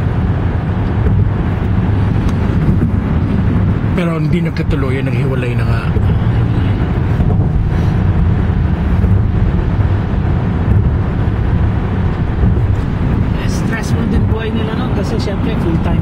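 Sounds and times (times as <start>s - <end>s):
car cabin road and engine noise: 0.0s - 16.0s.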